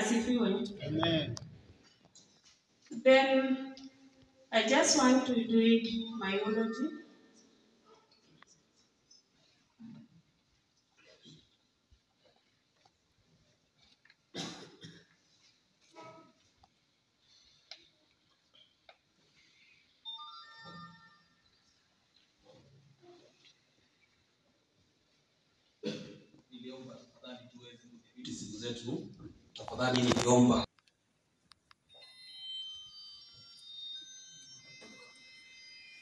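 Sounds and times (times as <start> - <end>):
hall room noise: 0.0 - 36.0
high chime-like tones: 20.0 - 21.6, 31.9 - 36.0.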